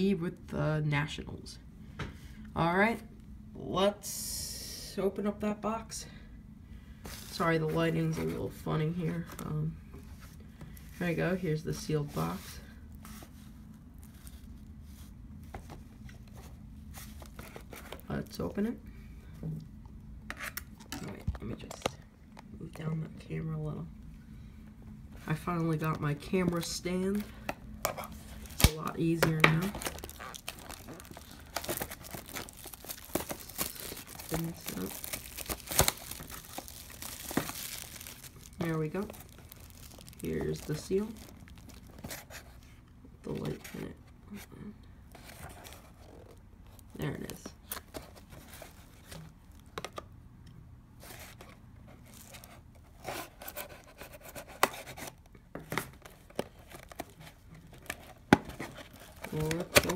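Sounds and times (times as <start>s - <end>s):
plastic shrink-wrap crinkling and tearing: 28.0s - 42.1s, 56.7s - 59.9s.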